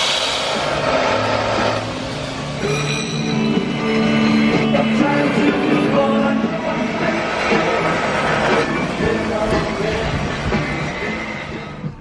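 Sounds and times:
background music: 0.7s - 12.0s.

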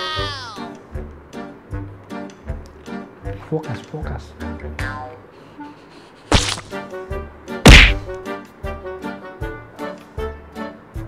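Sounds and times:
background music: 0.0s - 11.0s
loud sudden thumps: 7.7s - 8.2s.

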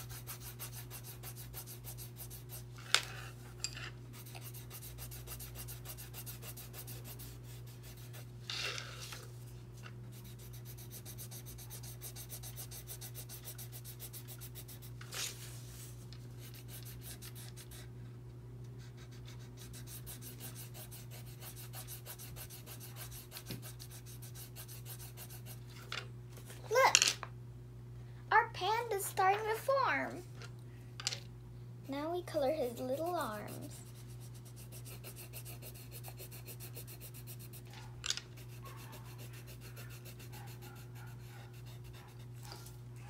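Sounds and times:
colored pencil scratching on paper: 0.0s - 3.3s, 4.1s - 8.3s, 10.1s - 15.8s, 16.4s - 17.9s, 18.8s - 25.6s, 32.3s - 37.7s, 38.4s - 42.6s
steady low hum: 0.0s - 43.0s.

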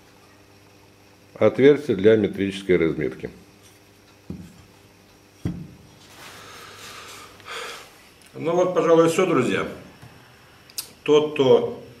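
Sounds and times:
soft breathy hiss: 6.0s - 8.2s.

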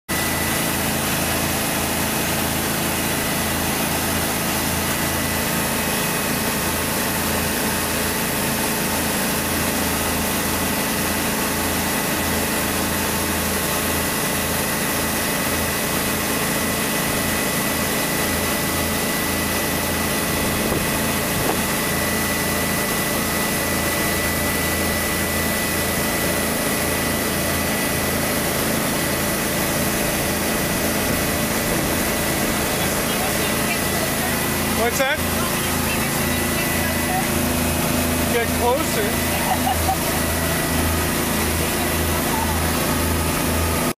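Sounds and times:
motorboat engine running: 0.1s - 43.9s
water rushing from hull: 0.1s - 43.9s.

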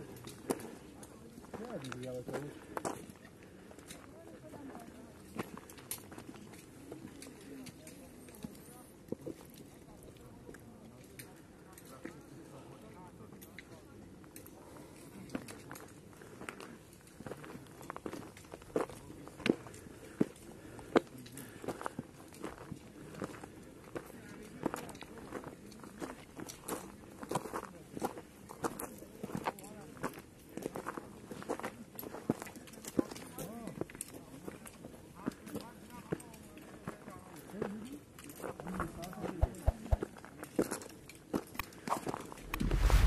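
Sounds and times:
people talking: 38.7s - 40.1s.

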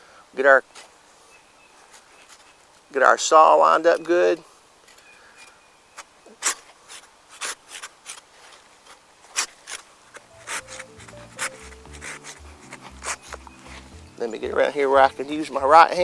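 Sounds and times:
hand saw cutting through branch: 6.3s - 14.2s.

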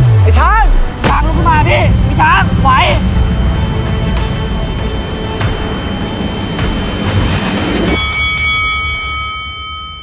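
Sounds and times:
boxing ring bell struck: 7.9s - 10.0s.

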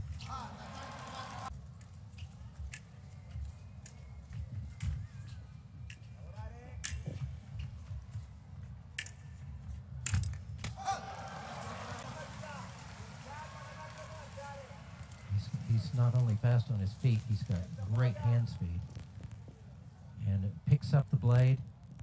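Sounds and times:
fencing blades clicking: 1.8s - 3.0s, 3.8s - 4.0s, 5.9s - 6.2s, 6.8s - 7.3s, 8.9s - 10.8s
wavering shout: 10.7s - 12.7s
low crowd rumble: 10.7s - 22.0s.

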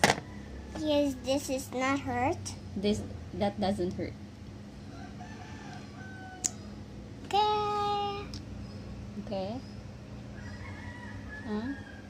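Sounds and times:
steady low hum: 0.0s - 12.0s
rooster crowing faintly: 4.8s - 6.7s, 10.3s - 12.0s.

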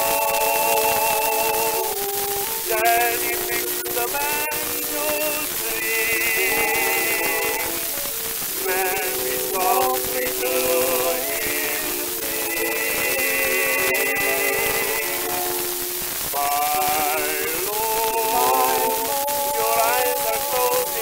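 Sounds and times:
record surface hiss: 0.0s - 21.0s
sharp record click: 0.0s - 21.0s.

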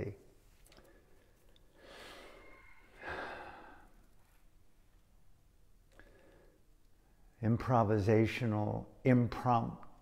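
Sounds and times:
man sighing: 1.8s - 4.0s.

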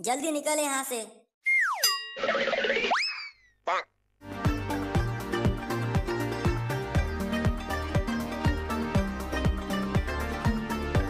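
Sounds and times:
cartoon boing: 1.5s - 4.0s.

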